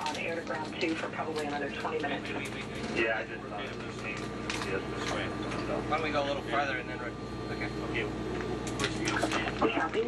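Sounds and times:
cabin ventilation hum: 0.0 - 10.0.

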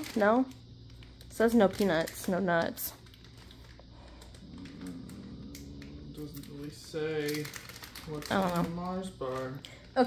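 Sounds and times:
plastic wrapper rustling: 0.0 - 10.0.

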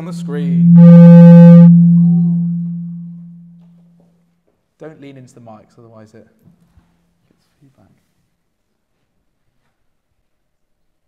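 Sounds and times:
microphone feedback howl: 0.0 - 3.6
high buzzing tone: 0.0 - 3.7.

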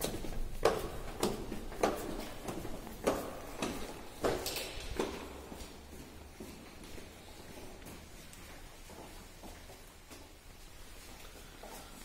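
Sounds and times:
footsteps on tiled floor: 0.0 - 12.0.

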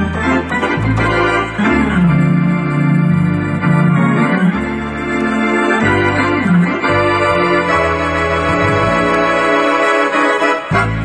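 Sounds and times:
electronic organ chords: 0.0 - 11.0.

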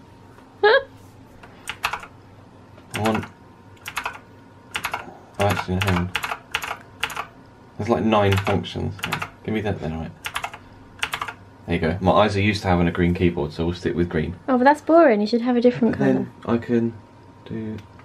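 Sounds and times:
mechanical keyboard clicking: 1.7 - 2.1, 2.9 - 7.3, 8.3 - 9.3, 10.2 - 11.4.

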